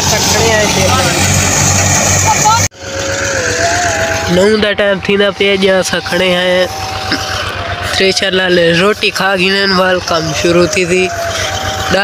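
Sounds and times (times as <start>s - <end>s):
voices: 0.0s - 1.4s, 2.0s - 12.0s
steady machine noise: 0.0s - 12.0s
thresher engine hum: 0.0s - 12.0s.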